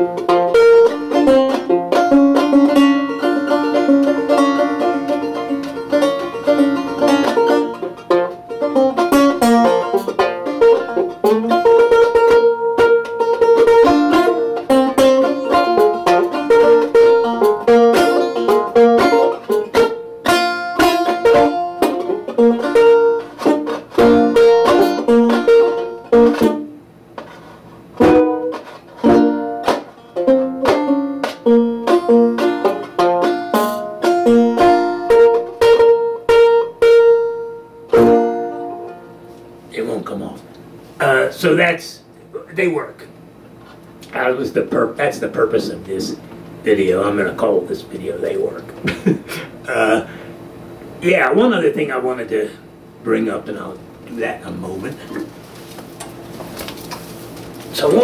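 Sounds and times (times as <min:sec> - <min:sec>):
banjo plucked notes: 0:00.0 - 0:39.7.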